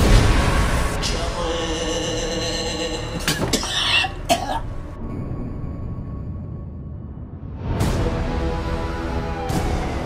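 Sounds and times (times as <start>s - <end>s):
dark low music: 0.0s - 10.0s
man coughing: 3.1s - 4.8s.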